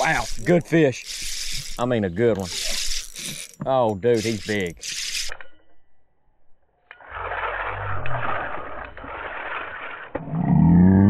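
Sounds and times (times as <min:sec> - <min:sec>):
fishing reel drag buzzing: 0:00.0 - 0:05.3.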